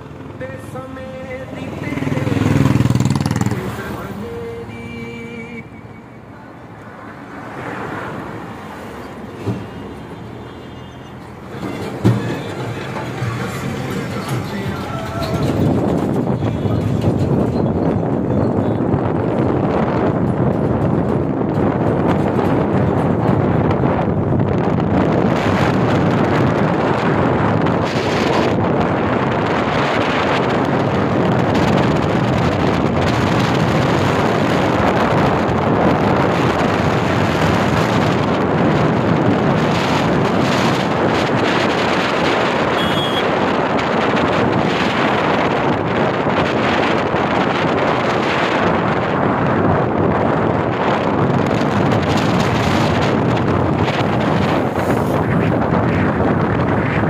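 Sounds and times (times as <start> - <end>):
vehicle approaching: 0.0 - 4.7, 11.2 - 42.5
road traffic noise: 0.0 - 57.0
motorcycle passing: 1.6 - 4.2
wind buffeting microphone: 11.3 - 57.0.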